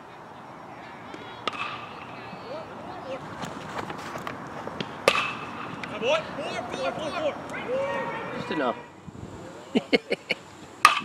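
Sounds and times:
distant voices: 0.0 - 11.0
metal bat pinging ball: 1.4 - 2.0, 5.0 - 5.9.

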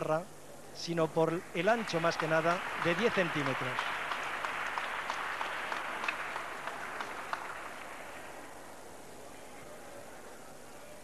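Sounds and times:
audience applauding: 1.6 - 8.7.

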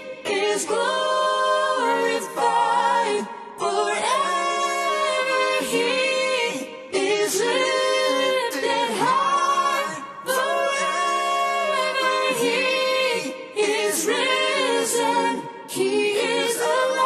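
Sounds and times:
a cappella singing in harmony: 0.0 - 17.0.

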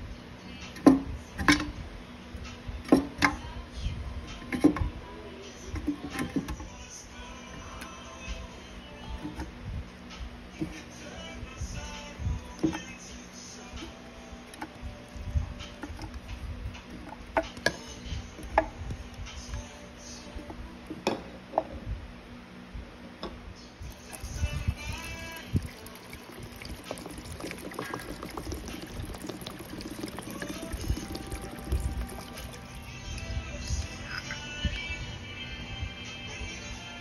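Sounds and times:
water pouring into bottle: 23.9 - 32.9.

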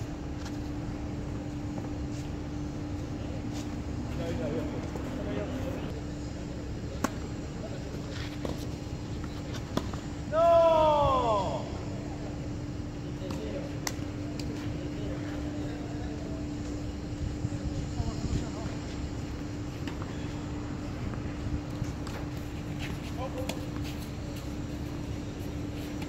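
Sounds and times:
drawn-out human cry: 10.3 - 11.7.

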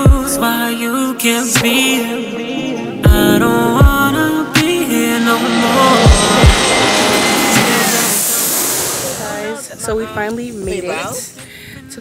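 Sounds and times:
background music with steady beat: 0.0 - 8.6
jet plane passing overhead: 3.3 - 9.8.

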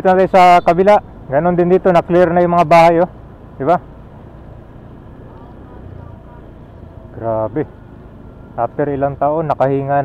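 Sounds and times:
distant road traffic rumble: 0.0 - 10.0
faint voices: 3.6 - 9.3.

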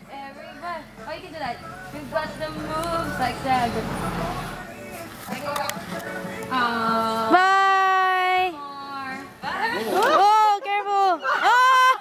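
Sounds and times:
children calling and laughing: 0.0 - 12.0.

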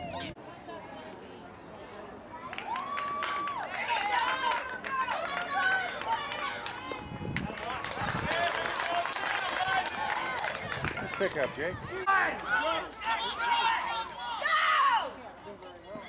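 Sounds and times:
crowd shouting and cheering: 2.3 - 15.3.

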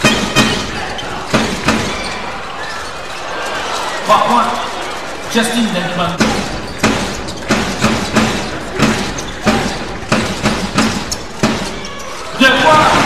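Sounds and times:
crowd murmur: 0.0 - 13.0.

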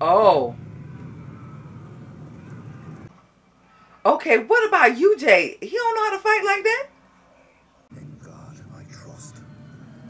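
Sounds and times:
low rumbling crowd din: 0.0 - 3.1.

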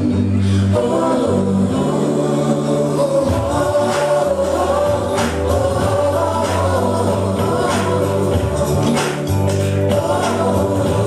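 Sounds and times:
children's song with chorus: 0.0 - 11.0.

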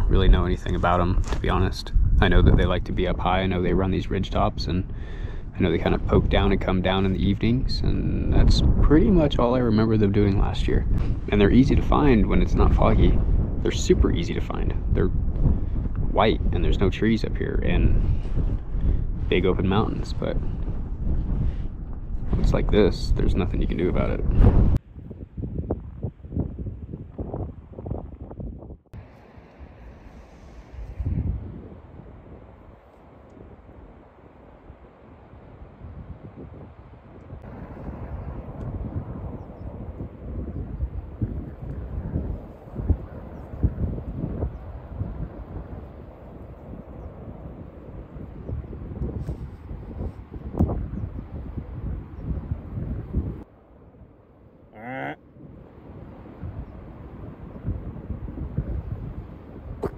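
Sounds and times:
wind buffeting microphone: 0.0 - 54.6, 55.2 - 59.9.

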